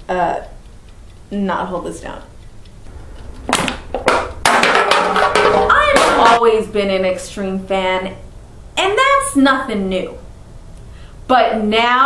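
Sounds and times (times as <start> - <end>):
metal can clattering on a table: 3.6 - 6.4.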